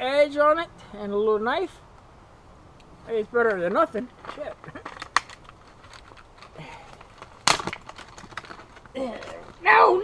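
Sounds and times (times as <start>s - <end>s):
sharp crack: 3.5s - 9.7s
packaging rustling: 4.2s - 9.7s.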